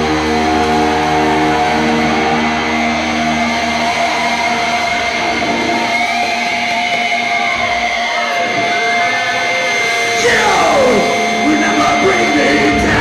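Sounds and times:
amplifier feedback whine: 0:00.0 - 0:13.0
distorted guitar and bass chord: 0:00.0 - 0:13.0.

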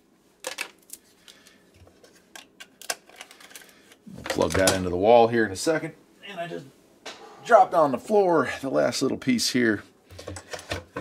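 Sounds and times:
cable clicking and rustling: 0:00.4 - 0:04.8.

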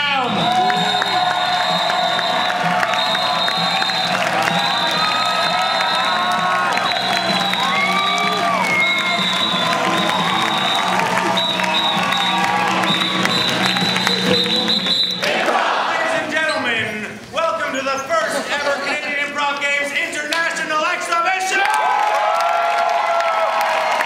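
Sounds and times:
music playing: 0:00.0 - 0:15.7
audience cheering and whooping: 0:00.1 - 0:16.0, 0:21.5 - 0:24.0.

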